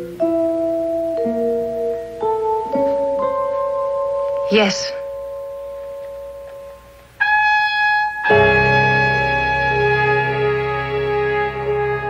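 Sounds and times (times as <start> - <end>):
dramatic held chord music: 0.0 - 12.0.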